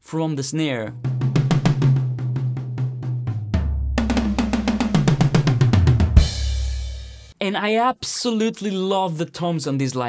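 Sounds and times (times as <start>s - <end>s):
deep floor tom note: 0.9s - 7.3s
drum toms in rapid fills: 0.9s - 7.3s.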